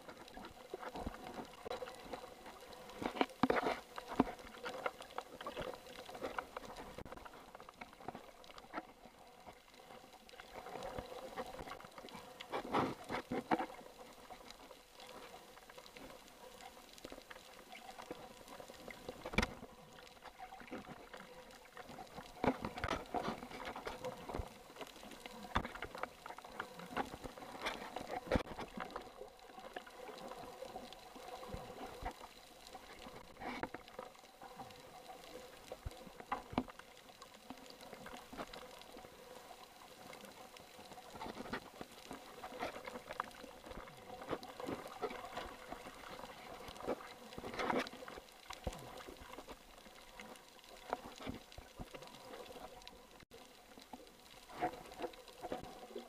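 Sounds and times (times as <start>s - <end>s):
underwater clicks and crackles: 0.0s - 56.0s.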